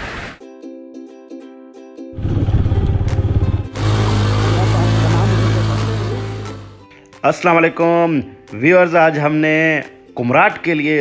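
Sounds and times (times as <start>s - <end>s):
motorcycle engine running: 2.2s - 6.8s.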